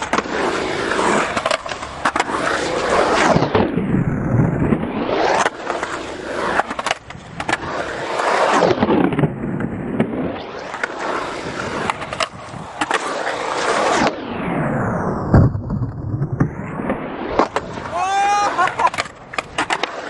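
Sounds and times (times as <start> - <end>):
skateboard clacking on concrete: 0.0 - 2.9, 11.8 - 13.8, 17.4 - 20.0
skateboard wheels rolling on concrete: 0.0 - 20.0.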